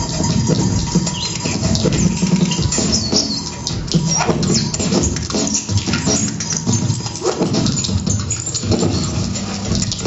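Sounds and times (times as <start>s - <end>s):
double bass and electronics improvising: 0.0s - 10.0s.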